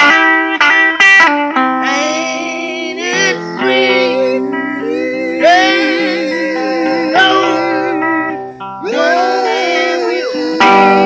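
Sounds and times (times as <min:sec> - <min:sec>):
electric guitar with vibrato: 0:00.0 - 0:11.0.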